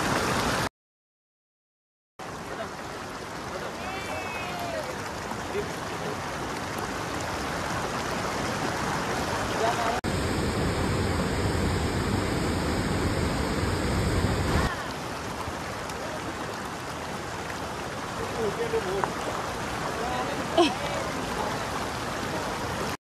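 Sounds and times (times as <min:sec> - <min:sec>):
deeper rush of water: 0:00.0 - 0:00.7, 0:02.2 - 0:23.0
stream running over rocks: 0:00.0 - 0:00.7, 0:02.2 - 0:23.0.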